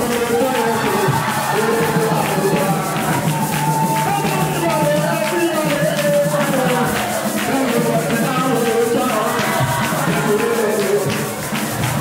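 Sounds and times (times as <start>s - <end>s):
congregation singing worship song: 0.0s - 12.0s
hand clapping: 0.0s - 12.0s.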